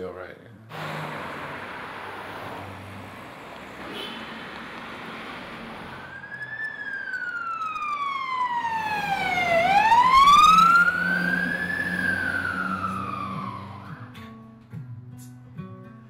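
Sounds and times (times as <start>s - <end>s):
fire engine siren wailing: 0.7s - 14.4s.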